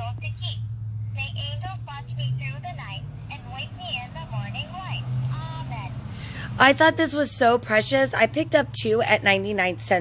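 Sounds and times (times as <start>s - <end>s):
steady low hum: 0.0s - 10.0s
toy high-pitched recorded voice: 1.2s - 5.9s.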